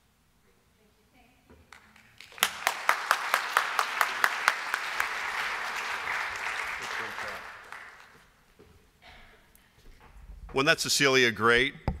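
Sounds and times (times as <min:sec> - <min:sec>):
audience applauding: 0:01.8 - 0:08.4.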